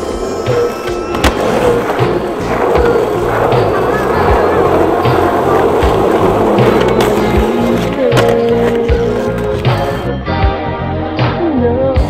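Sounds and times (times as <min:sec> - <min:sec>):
skateboard wheels rolling on asphalt: 0:00.0 - 0:10.1.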